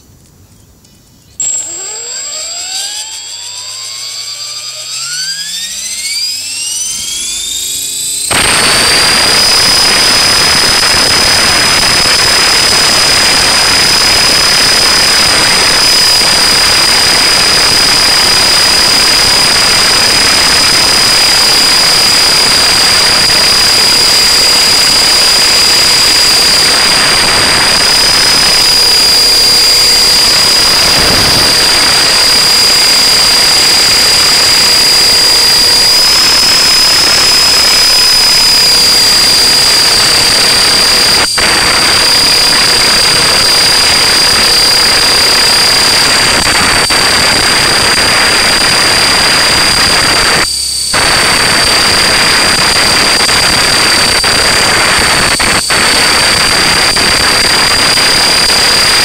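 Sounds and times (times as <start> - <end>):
electric motor whine: 1.4 - 59.0.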